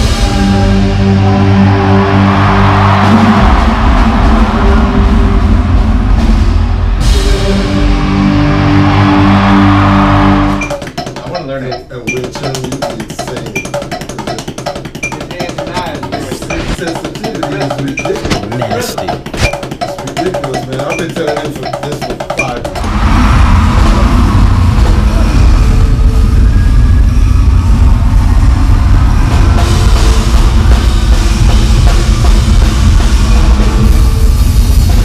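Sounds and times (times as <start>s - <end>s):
drum kit played alone: 10.6s - 23.0s, 29.4s - 35.0s
rock band playing loud: 29.2s - 35.0s.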